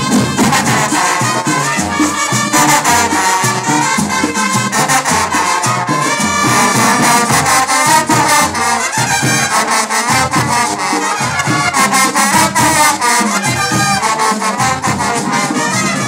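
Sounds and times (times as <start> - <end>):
marching band playing: 0.0 - 16.0
percussion steady beat: 0.0 - 16.0.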